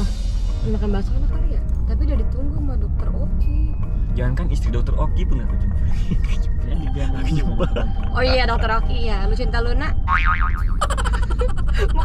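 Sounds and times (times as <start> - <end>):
cartoon boing effect: 10.1 - 10.8.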